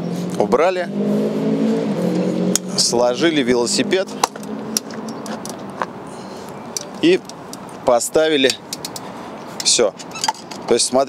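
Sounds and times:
outdoor background noise: 0.0s - 11.0s
bike clicks and knocks: 4.2s - 6.0s, 6.7s - 7.8s, 8.4s - 10.9s.

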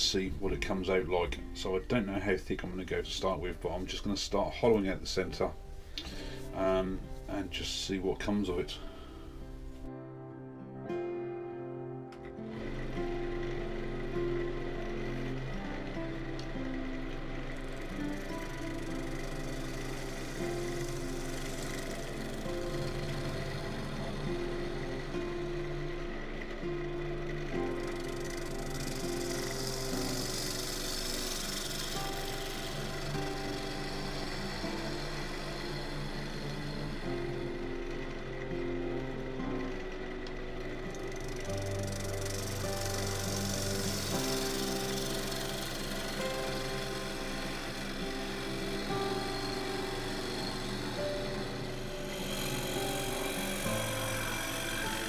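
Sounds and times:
lathe gouge cutting wood: 0.0s - 9.9s, 12.4s - 55.0s
instrumental music: 0.0s - 55.0s.

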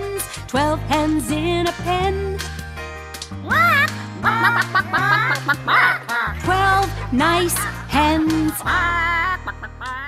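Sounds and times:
children's song with singer: 6.1s - 10.0s.

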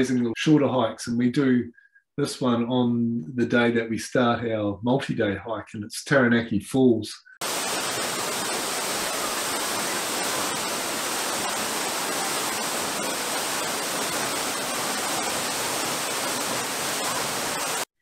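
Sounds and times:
waterfall pouring into pool: 7.4s - 17.9s.

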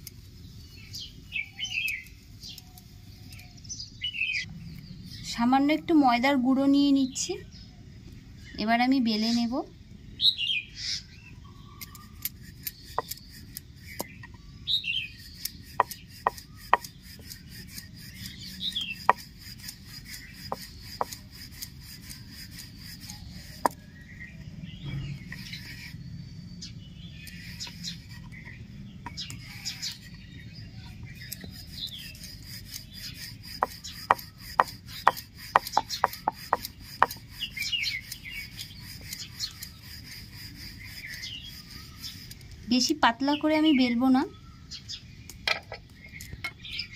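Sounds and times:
birds chirping: 0.0s - 46.9s
rolling pin rubbing on dough: 15.1s - 23.8s, 30.9s - 43.0s.

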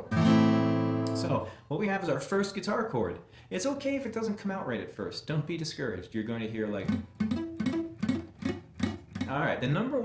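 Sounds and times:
muted acoustic guitar plucks: 6.8s - 9.8s.

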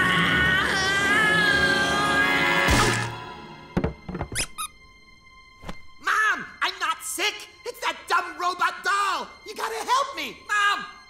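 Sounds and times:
music: 0.0s - 11.0s
cartoon thump: 3.8s - 4.6s.

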